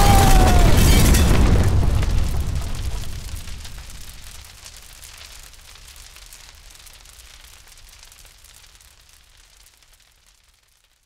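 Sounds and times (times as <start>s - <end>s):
low rumble with crackling hiss: 0.0s - 11.0s.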